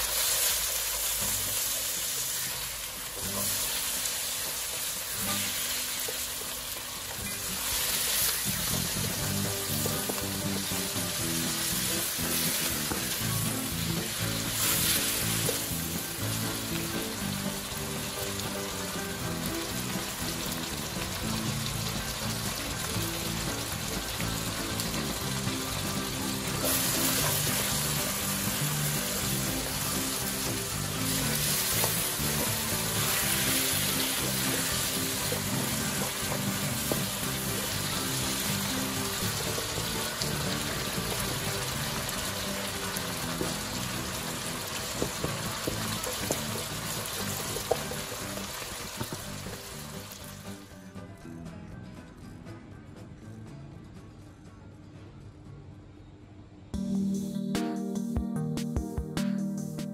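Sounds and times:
oil sizzling in a wok: 0:00.0 - 0:50.8.

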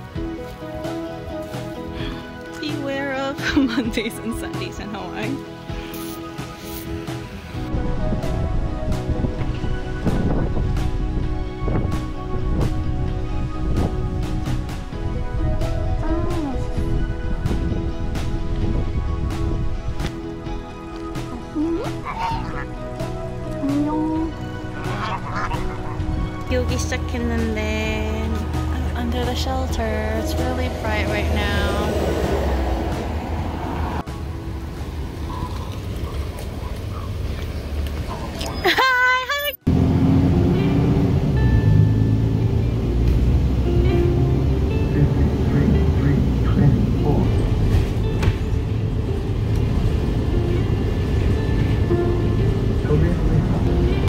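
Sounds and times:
background music: 0:00.0 - 0:35.6, 0:38.7 - 0:54.0
bus engine rumble: 0:00.0 - 0:54.0
tyres on the road: 0:00.0 - 0:54.0
geese honking: 0:22.0 - 0:22.8, 0:24.4 - 0:26.7.

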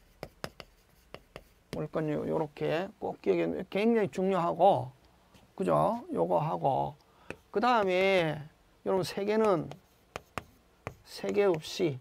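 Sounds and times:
chalk strokes on chalkboard: 0:00.0 - 0:01.9, 0:09.0 - 0:11.8
man speaking: 0:01.8 - 0:05.0, 0:05.6 - 0:09.8, 0:11.0 - 0:12.0.

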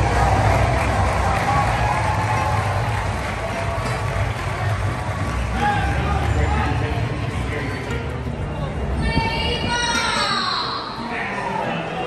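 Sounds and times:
crowd noise: 0:00.0 - 0:12.0
music over public-address system: 0:00.0 - 0:12.0.

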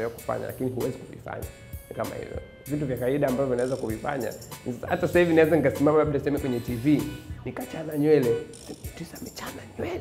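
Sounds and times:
faint background music: 0:00.0 - 0:10.0
man speaking: 0:00.0 - 0:10.0.

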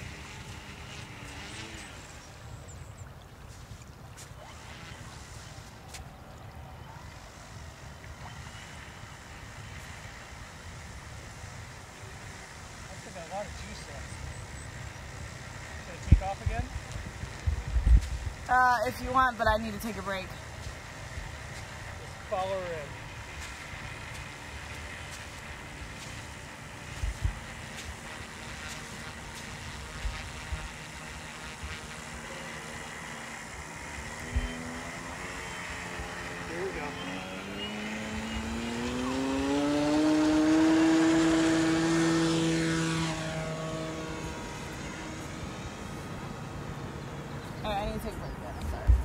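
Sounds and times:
electric model plane motor whine: 0:00.0 - 0:49.0.

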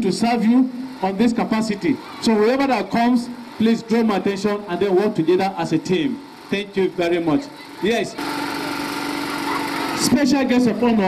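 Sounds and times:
small engine running steadily: 0:00.0 - 0:11.0.

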